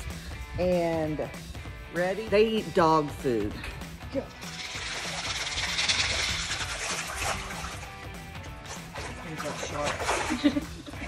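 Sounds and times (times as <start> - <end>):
background music: 0.0 - 11.0
pellets splashing onto water: 4.4 - 10.8.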